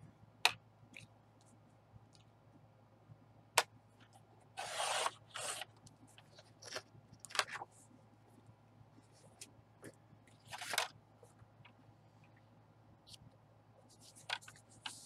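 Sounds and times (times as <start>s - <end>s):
card stock rustling on scoring board: 4.6s - 6.8s.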